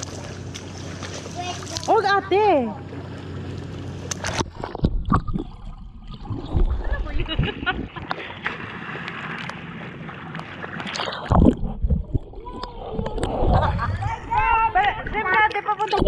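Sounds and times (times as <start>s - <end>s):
low surge of water: 0.0s - 15.2s
water splashing against camera: 0.0s - 16.0s.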